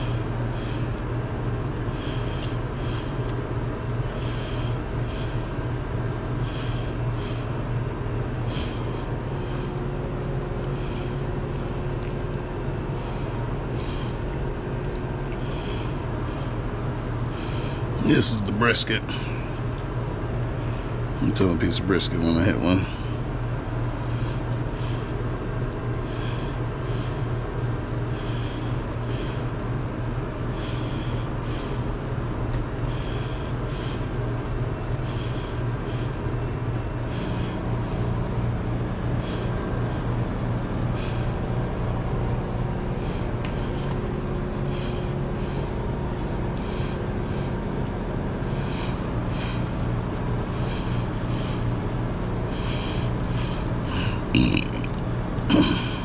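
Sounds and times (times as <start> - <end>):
higher machine hum: 0.0 - 56.0
low hum of kitchen machinery: 0.0 - 56.0.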